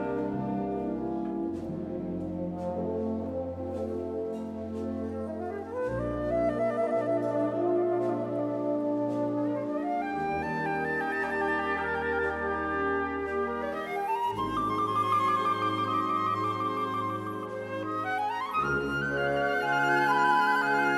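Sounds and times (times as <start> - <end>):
wind band playing: 0.0 - 20.9.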